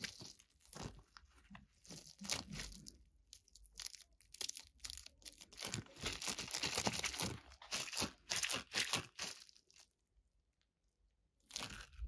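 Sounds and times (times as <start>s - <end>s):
stress ball squeezing: 0.0s - 9.8s.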